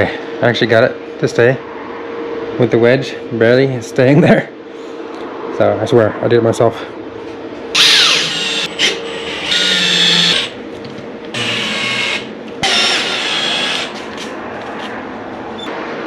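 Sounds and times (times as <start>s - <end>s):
cordless drill driving screws: 7.8s - 10.5s, 11.3s - 14.0s.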